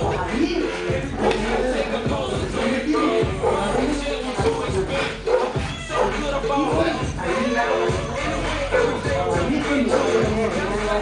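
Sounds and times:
hip-hop beat: 0:00.0 - 0:11.0.

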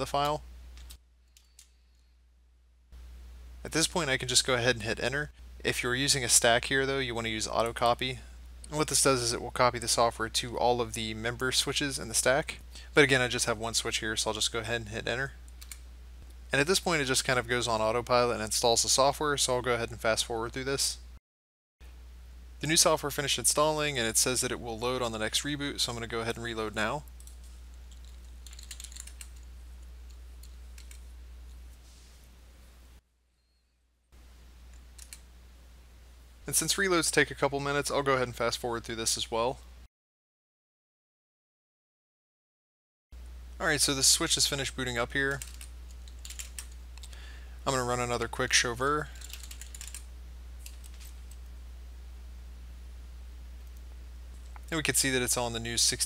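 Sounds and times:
steady low hum: 0:00.0 - 0:21.2, 0:21.8 - 0:33.6, 0:34.2 - 0:39.9, 0:43.2 - 0:56.0
computer keyboard keystrokes: 0:27.2 - 0:29.4, 0:30.1 - 0:31.0, 0:45.3 - 0:47.1, 0:49.2 - 0:50.0.

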